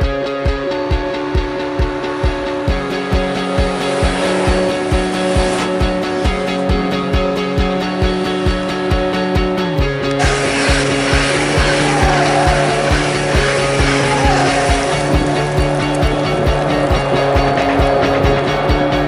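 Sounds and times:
rock music: 0.0 - 19.0
electric train arriving: 10.2 - 18.6.

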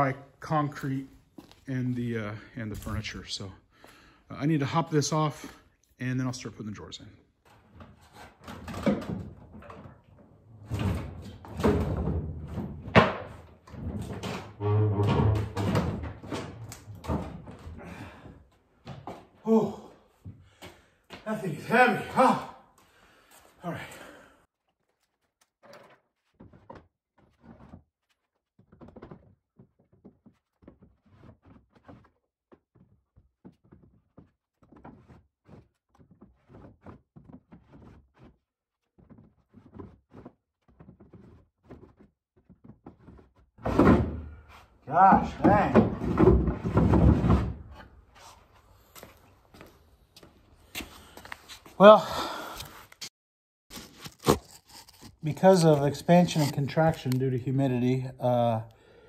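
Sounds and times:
wooden drawers scraping and thudding: 39.1 - 48.4.

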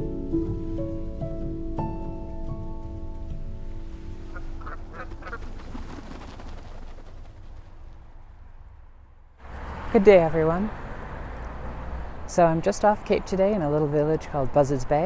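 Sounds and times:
soft background music: 0.0 - 5.7
low outdoor noise: 2.6 - 15.0
waterfowl calling: 4.2 - 6.8.

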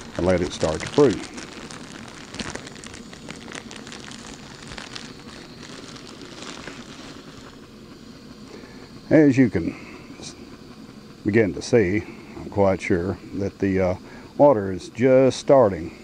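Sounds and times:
gas stove hissing: 0.0 - 16.0.

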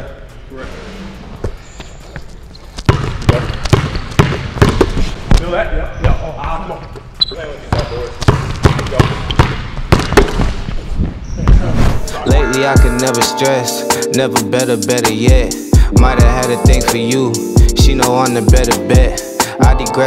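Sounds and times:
basketballs bouncing on wooden floor: 2.8 - 6.2, 7.7 - 10.8.

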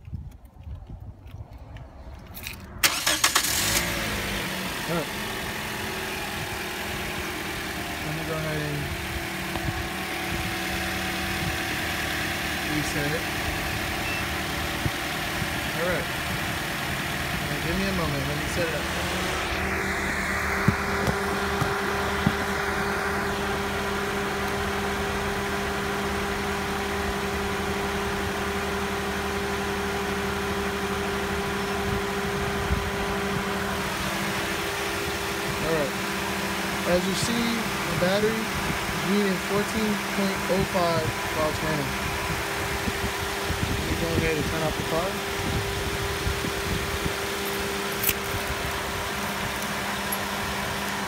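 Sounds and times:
car engine idling: 1.5 - 51.0.

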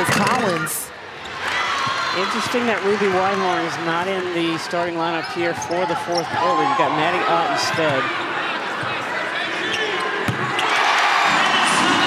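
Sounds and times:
arena crowd noise: 0.0 - 12.0
crowd cheering: 0.4 - 5.2, 5.9 - 12.0.

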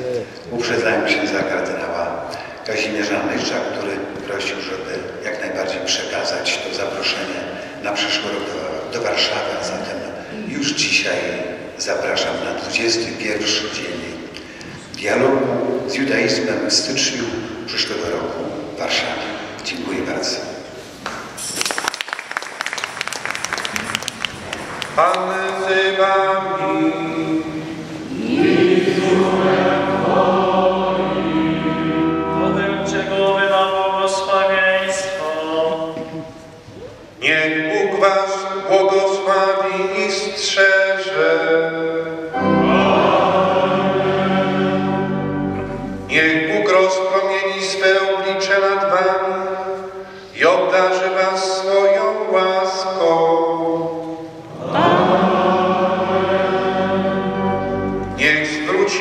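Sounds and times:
voices singing chant: 25.4 - 34.5, 42.4 - 45.3, 54.4 - 58.6.

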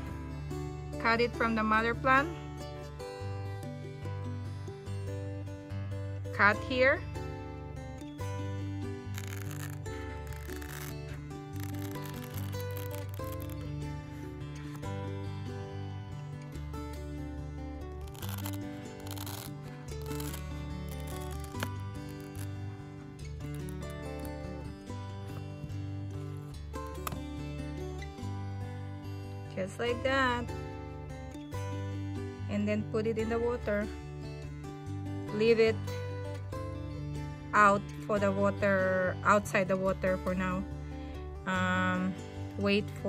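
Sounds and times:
background music with bass: 0.0 - 43.0
scissors snipping a thick leaf: 11.6 - 13.7, 18.0 - 22.6.

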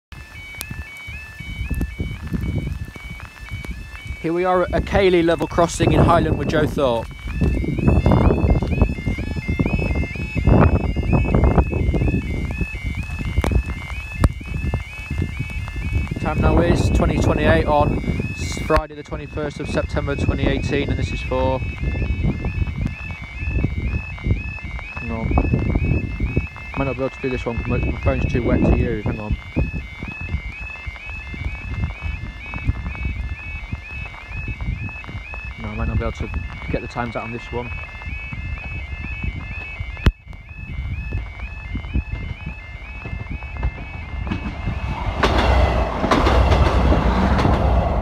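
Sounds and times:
level crossing alarm warbling: 0.1 - 48.0
low rumbling noise: 1.1 - 48.0.

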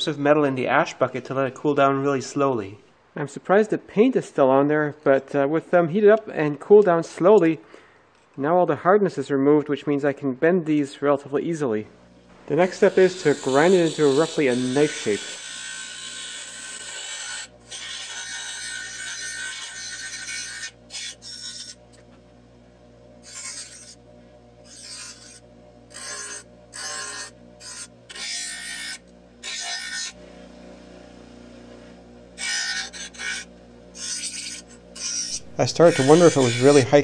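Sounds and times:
bench grinder motor hum: 12.0 - 37.0
metal grinding hiss: 12.6 - 15.5, 35.0 - 37.0.

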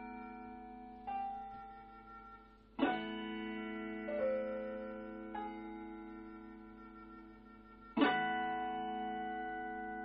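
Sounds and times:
guitar chord ringing: 0.0 - 10.0.

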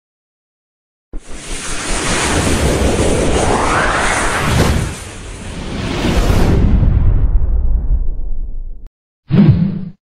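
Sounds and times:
rising swoosh: 1.2 - 7.2.

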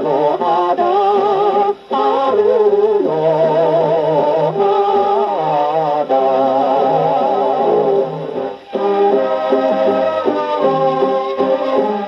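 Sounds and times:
old popular song on phonograph: 0.0 - 12.0.

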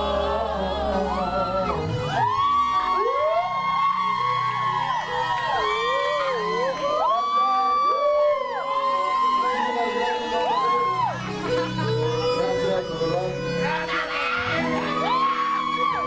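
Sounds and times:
sustained bending high notes: 0.0 - 16.0.

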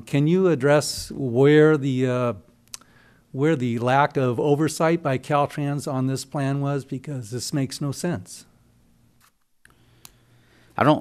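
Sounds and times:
man speaking: 0.0 - 2.4, 3.4 - 8.5, 10.8 - 11.0.

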